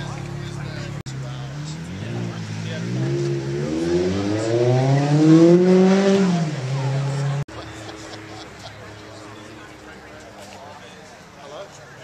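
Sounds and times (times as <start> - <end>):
sports car engine revving: 0.0 - 9.8.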